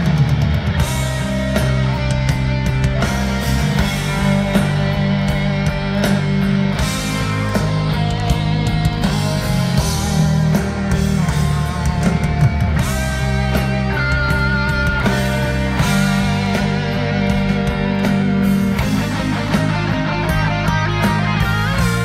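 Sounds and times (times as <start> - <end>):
bass guitar: 0.0 - 22.0
distorted electric guitars: 0.0 - 22.0
drums: 0.0 - 22.0.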